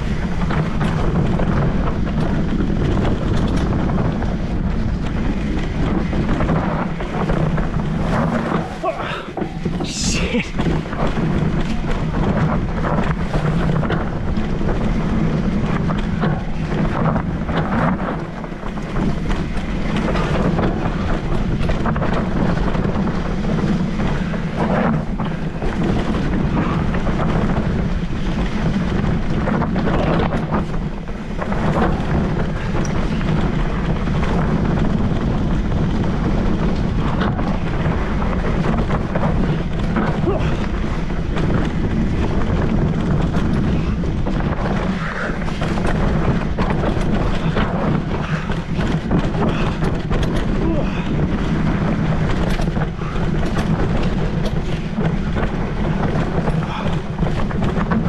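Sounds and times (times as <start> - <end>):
bike knocks and rattles: 0.0 - 58.0
bike tyre noise: 0.0 - 58.0
wind rush on microphone: 0.0 - 58.0.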